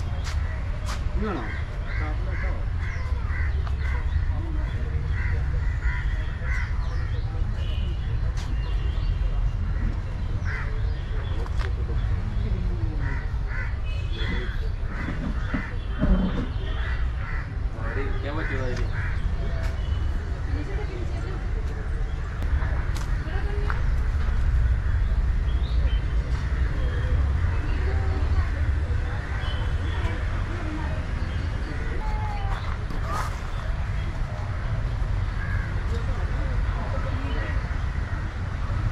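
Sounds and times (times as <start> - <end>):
voices talking: 0.0 - 38.9.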